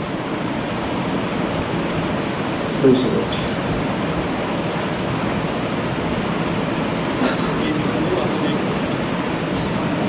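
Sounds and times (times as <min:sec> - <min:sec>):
rushing room noise: 0:00.0 - 0:10.0.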